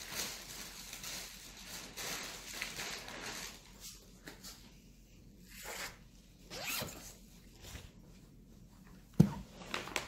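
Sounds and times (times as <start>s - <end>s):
zipper pulled: 5.5s - 7.1s.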